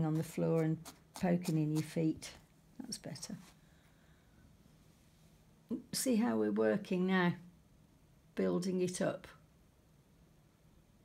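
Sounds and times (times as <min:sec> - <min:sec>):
woman speaking: 0:00.0 - 0:03.5, 0:05.7 - 0:07.4, 0:08.4 - 0:09.4.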